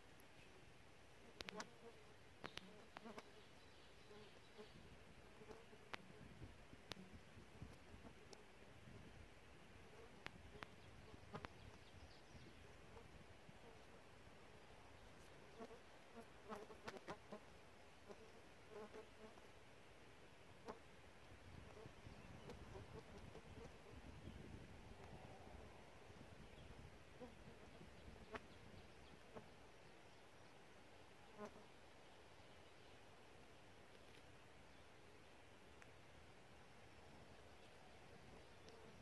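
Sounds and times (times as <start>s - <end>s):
soft clicks: 1.4s - 1.7s.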